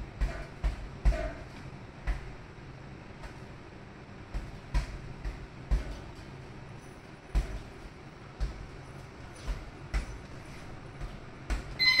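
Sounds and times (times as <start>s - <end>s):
gloved punches on a bag: 0.0s - 2.4s, 4.3s - 6.2s, 7.3s - 11.8s
loud electronic timer beep: 11.8s - 12.0s.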